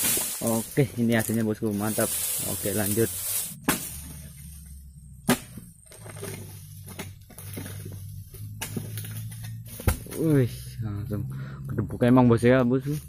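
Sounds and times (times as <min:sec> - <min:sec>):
low steady hum: 0:00.0 - 0:12.5.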